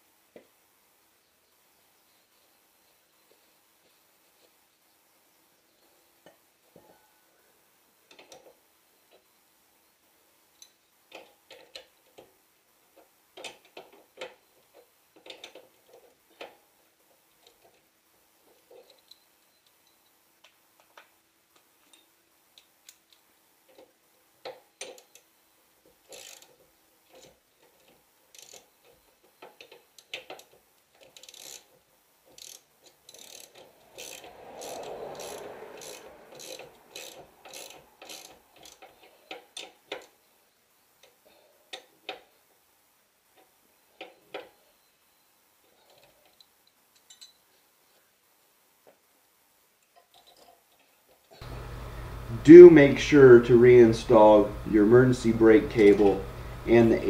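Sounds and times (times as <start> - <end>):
hand ratchet clicking: 26.0 - 27.3, 28.3 - 28.7, 29.4 - 31.7, 32.3 - 40.1.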